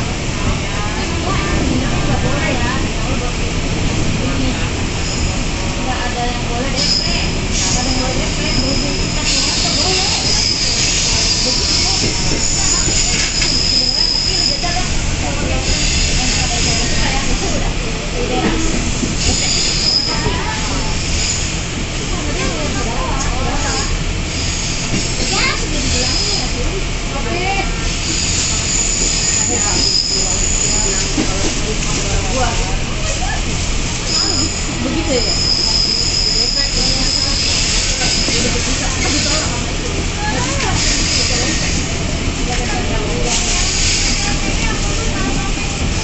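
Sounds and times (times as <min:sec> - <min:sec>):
train rumbling: 0:00.0 - 0:46.0
wheel squeal: 0:06.8 - 0:14.8, 0:19.2 - 0:20.4, 0:28.0 - 0:31.2, 0:34.1 - 0:38.5.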